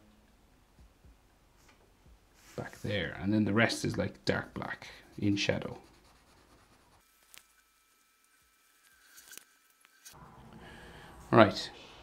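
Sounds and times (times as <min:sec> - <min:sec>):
marker scratching on paper: 0:05.2 - 0:07.0.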